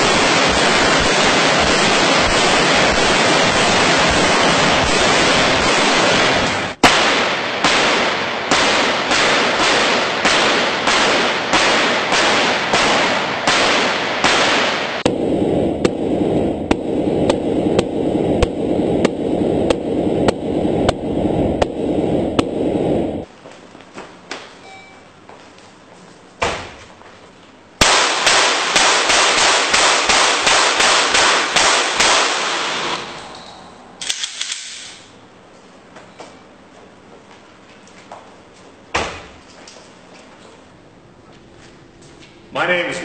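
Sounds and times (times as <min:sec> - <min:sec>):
muffled gunshots: 0:00.0 - 0:21.0, 0:27.8 - 0:33.0
rifle fire: 0:00.0 - 0:21.0, 0:27.8 - 0:33.1.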